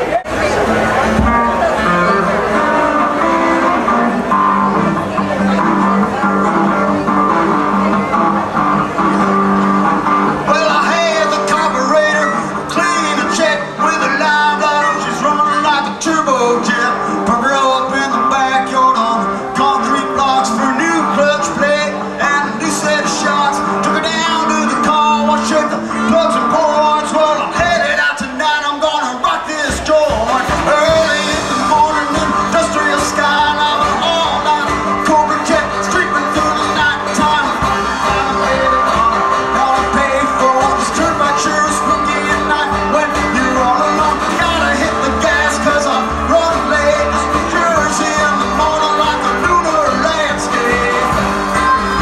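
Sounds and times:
lap steel guitar: 0.0 - 28.2, 28.8 - 52.0
drums: 0.0 - 52.0
electric guitar: 0.0 - 52.0
wavering lead guitar line: 0.0 - 52.0.

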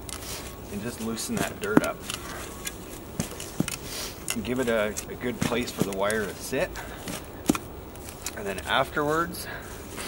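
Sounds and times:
spade scraping among dry leaves: 0.2 - 10.0.

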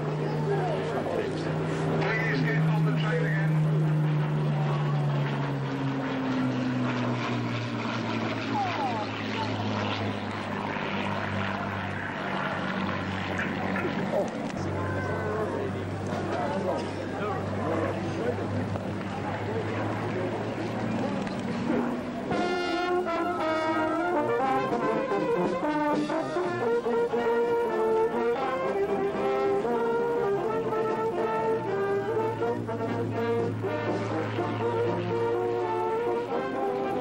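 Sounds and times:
outdoor noise: 0.0 - 37.0
propeller aircraft engine drone: 0.0 - 37.0
brass band music: 22.2 - 37.0.

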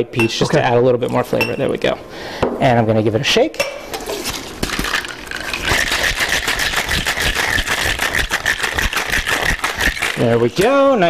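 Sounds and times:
ice rattling in cocktail shaker: 4.6 - 10.6.

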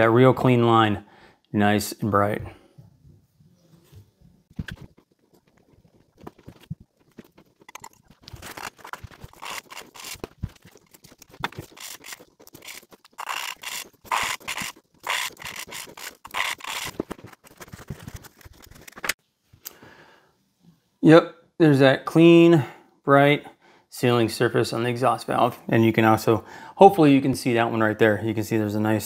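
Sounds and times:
lapping compound scraping: 3.8 - 19.2.

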